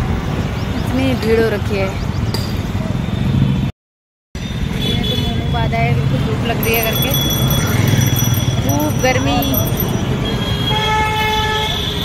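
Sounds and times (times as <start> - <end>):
road traffic rumble: 4.4 - 12.0.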